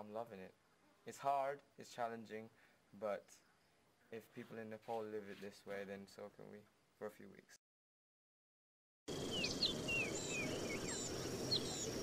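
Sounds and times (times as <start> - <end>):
low background hiss: 0.0 - 7.6
birds chirping: 9.1 - 12.0.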